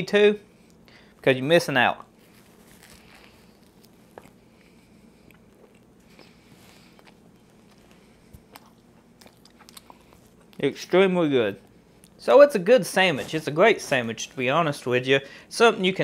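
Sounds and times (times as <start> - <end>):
chewing with small crunches: 2.0 - 10.8, 11.6 - 12.2
crunch of biting a sandwich: 2.3 - 10.6.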